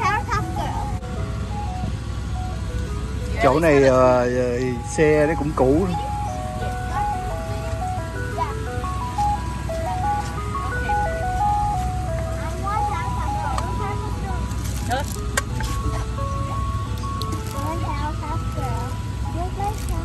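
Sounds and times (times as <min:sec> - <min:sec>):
ice cream truck chime melody: 0:00.0 - 0:20.0
low steady truck hum: 0:00.0 - 0:20.0.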